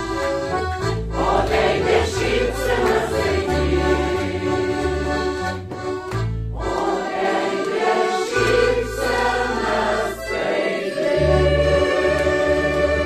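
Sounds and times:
accordion: 0.0 - 13.0
mixed choir singing: 1.1 - 5.2, 6.6 - 13.0.

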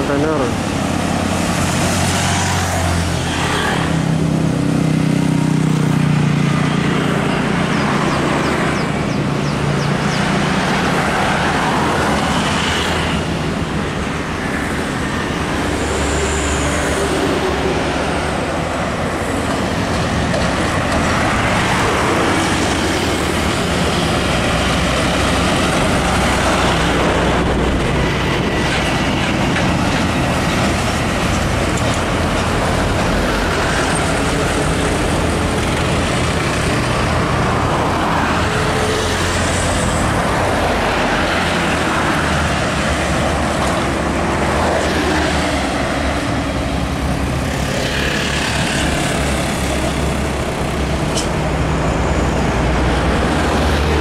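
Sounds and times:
heavy truck engine: 0.0 - 54.0
road traffic passing: 0.0 - 54.0.

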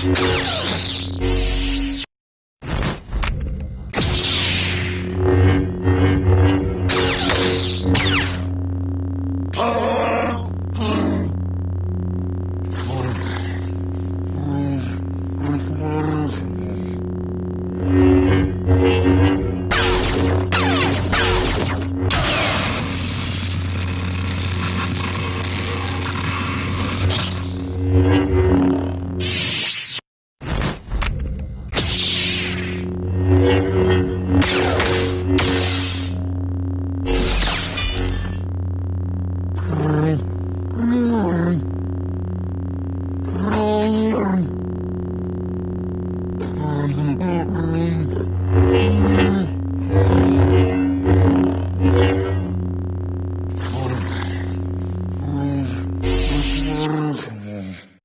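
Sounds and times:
lightsaber humming: 0.0 - 2.1, 3.0 - 30.0, 30.7 - 58.0.

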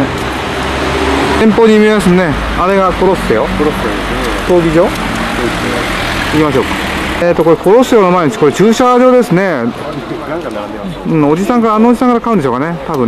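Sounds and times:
car engine hum: 0.0 - 11.4
street traffic: 0.0 - 13.0
voices talking: 1.2 - 13.0.

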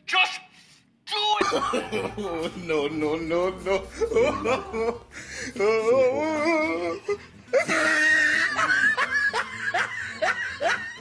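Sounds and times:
man laughing: 1.4 - 11.0.

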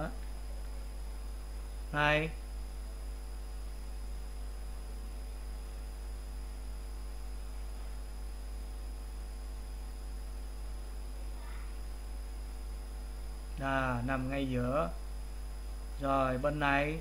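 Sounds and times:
faint hiss: 0.0 - 17.0
low electrical hum: 0.0 - 17.0.

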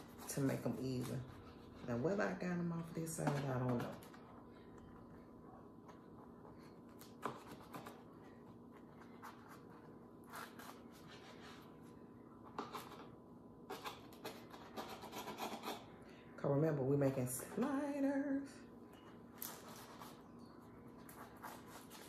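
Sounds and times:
knife sawing through bread rolls: 13.8 - 15.9.

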